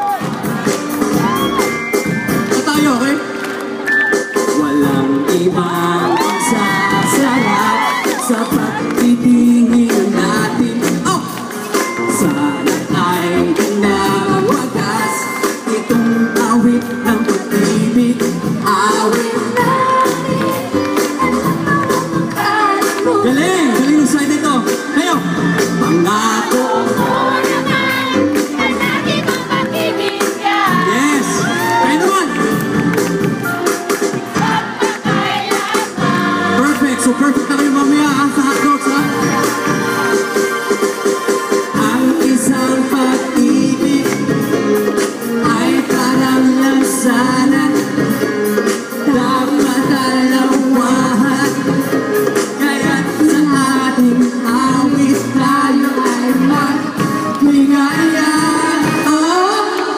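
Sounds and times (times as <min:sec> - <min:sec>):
crowd cheering and whooping: 0:00.0 - 0:02.2, 0:05.6 - 0:09.1, 0:26.8 - 0:33.2
live pop band with singer: 0:00.0 - 0:59.9.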